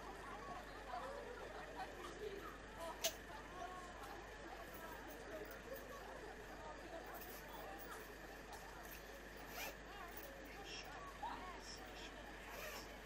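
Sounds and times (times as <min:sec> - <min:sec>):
distant crowd chatter: 0:00.0 - 0:13.0.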